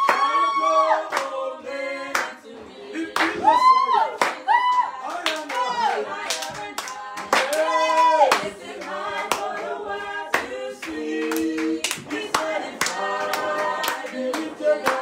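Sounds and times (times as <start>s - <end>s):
people clapping in rhythm: 0.0s - 15.0s
voices singing praise: 0.0s - 15.0s.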